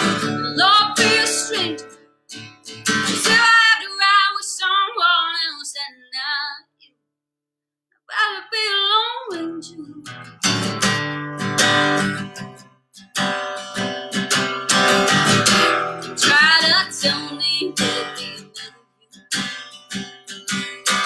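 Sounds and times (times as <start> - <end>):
woman singing with vibrato: 0.0 - 2.0, 3.1 - 6.8, 8.1 - 10.1, 16.1 - 18.8
strummed acoustic guitar: 0.0 - 4.9, 9.9 - 21.0.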